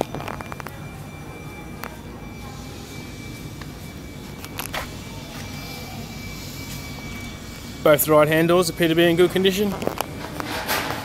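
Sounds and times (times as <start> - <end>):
faint high-pitched tone: 0.0 - 11.0.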